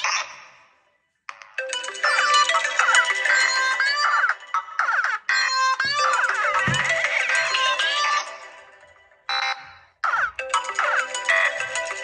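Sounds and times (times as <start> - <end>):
smartphone ringtone melody: 1.4 - 12.0.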